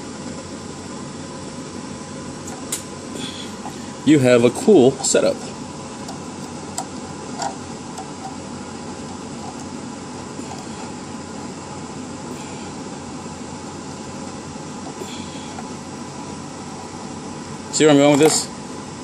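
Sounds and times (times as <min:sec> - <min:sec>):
fan hum and hiss: 0:00.0 - 0:19.0.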